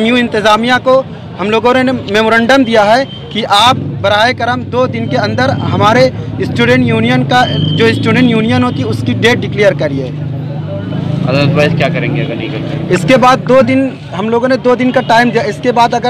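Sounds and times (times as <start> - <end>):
man speaking: 11.2 - 16.0.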